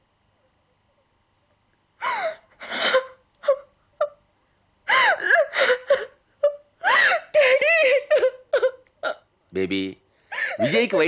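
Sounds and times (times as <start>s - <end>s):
person wailing and gasping: 2.0s - 3.7s.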